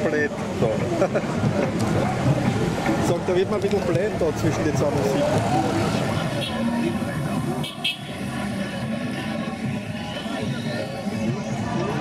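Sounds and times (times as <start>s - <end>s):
vehicle engines running: 0.0s - 12.0s
voices: 0.0s - 12.0s.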